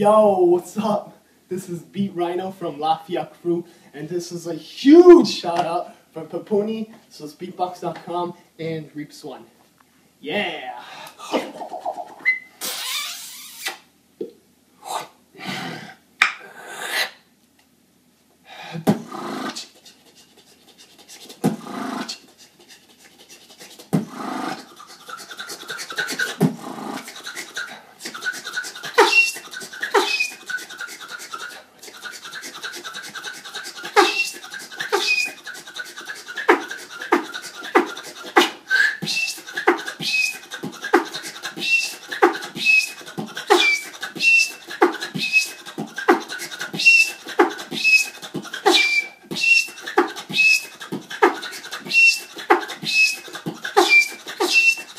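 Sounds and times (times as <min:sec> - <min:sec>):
person beatboxing: 0:04.8 - 0:05.8, 0:18.7 - 0:54.9.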